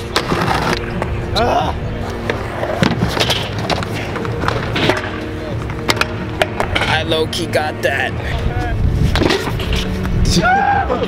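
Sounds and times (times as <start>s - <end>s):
scooter wheels rolling on concrete: 0.0s - 10.2s
background music: 0.0s - 11.0s
scooter deck clacking: 2.2s - 7.2s.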